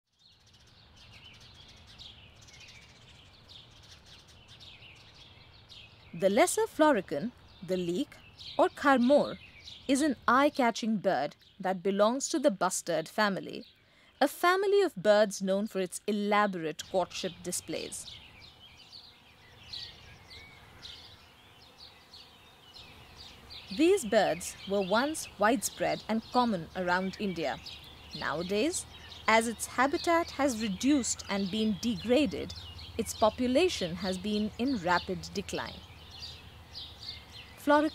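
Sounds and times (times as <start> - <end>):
small birds chirping: 0.1 - 37.9.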